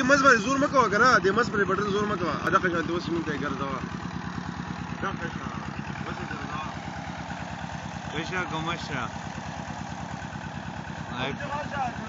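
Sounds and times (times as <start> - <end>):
flywheel engine driving water pump: 0.0 - 12.0.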